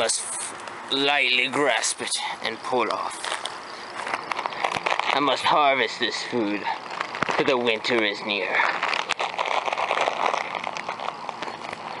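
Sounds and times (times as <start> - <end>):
plastic bag crinkling: 0.0 - 12.0
twigs and leaves rustling: 0.0 - 12.0.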